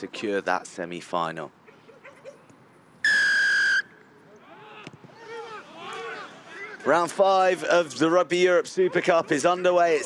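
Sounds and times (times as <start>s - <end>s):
referee whistle blast: 3.0s - 4.0s
faint shouts: 4.3s - 6.9s.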